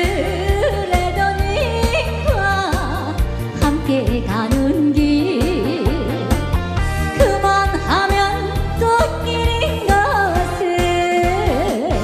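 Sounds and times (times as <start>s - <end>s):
woman singing: 0.0s - 6.5s, 7.1s - 12.0s
instrumental accompaniment with beat: 0.0s - 12.0s.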